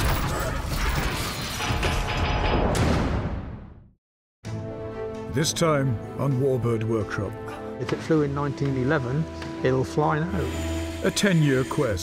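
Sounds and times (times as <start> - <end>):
music: 4.4 - 12.0.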